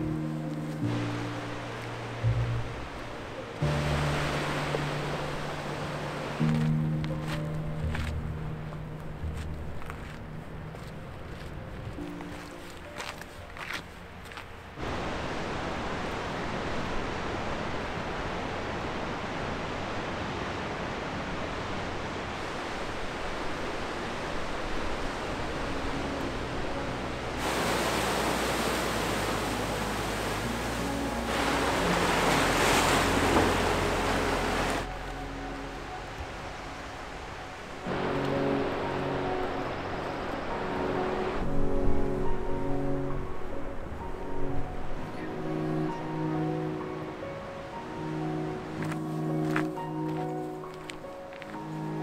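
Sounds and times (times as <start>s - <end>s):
soft music: 0.0s - 15.4s, 23.0s - 52.0s
surf breaking over rocks: 3.6s - 7.4s, 27.4s - 34.9s.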